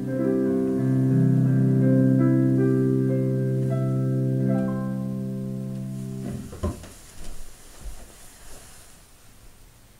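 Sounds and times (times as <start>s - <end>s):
piano chord ringing: 0.0s - 6.5s
faint knocks and rustles: 5.8s - 9.0s.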